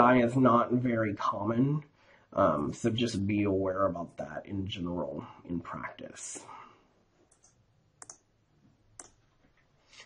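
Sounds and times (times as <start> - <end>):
computer mouse clicks: 7.3 - 8.3, 8.9 - 9.2.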